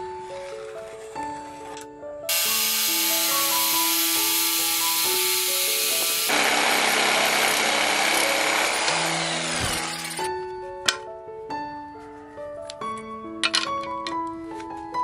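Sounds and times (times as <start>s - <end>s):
background music melody: 0.0s - 6.3s, 7.5s - 15.0s
jigsaw cutting wood: 2.3s - 10.3s.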